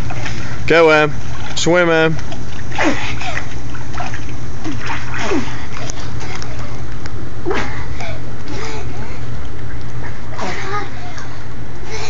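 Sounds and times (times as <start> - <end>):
children splashing in water: 2.2 - 6.8.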